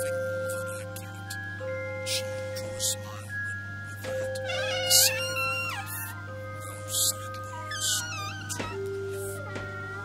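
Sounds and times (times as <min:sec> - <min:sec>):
eerie ambient film score: 0:02.0 - 0:10.0.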